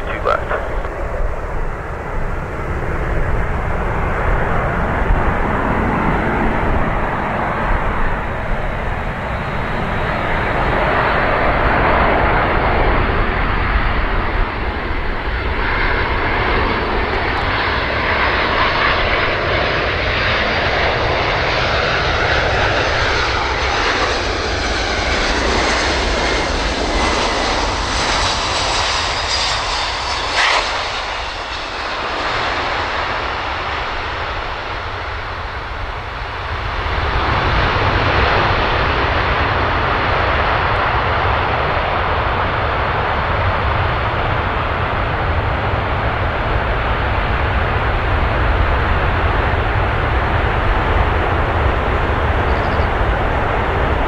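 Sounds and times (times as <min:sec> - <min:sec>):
jet engines roaring and whining: 0:00.0 - 0:54.0.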